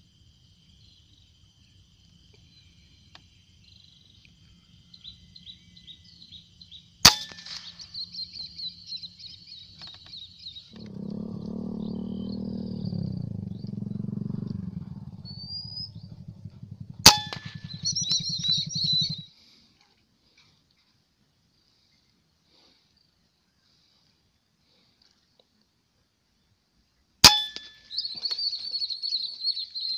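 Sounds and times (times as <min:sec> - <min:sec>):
birds or insects chirping: 0:00.0 - 0:19.6, 0:26.3 - 0:29.9
low droning hum: 0:10.8 - 0:19.2
rifle shots: 0:17.0 - 0:19.2.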